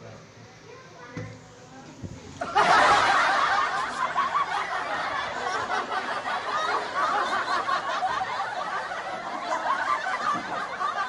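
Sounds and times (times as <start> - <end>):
several people laughing loudly: 2.4 - 11.0.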